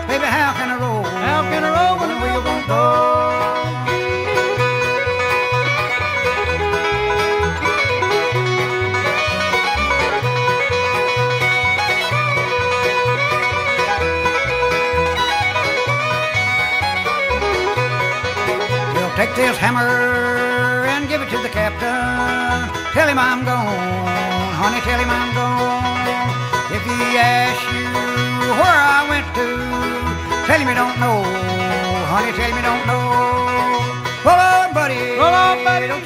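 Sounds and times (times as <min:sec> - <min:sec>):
bluegrass string band playing: 0:00.0 - 0:36.0.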